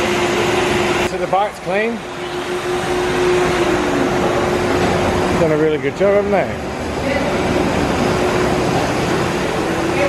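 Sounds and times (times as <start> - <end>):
machinery hum and hiss: 0.0 - 10.0.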